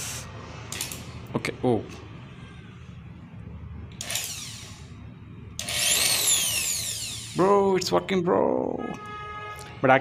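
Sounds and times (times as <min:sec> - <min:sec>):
electric drill motor whine: 0:04.0 - 0:05.0, 0:05.6 - 0:07.4.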